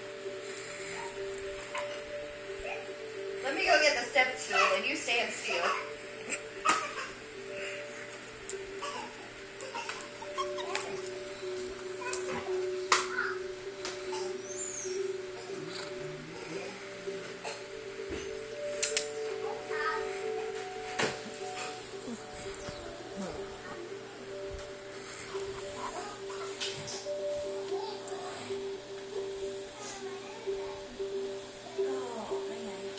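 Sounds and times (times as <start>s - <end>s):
background music with held tones: 0.0s - 32.9s.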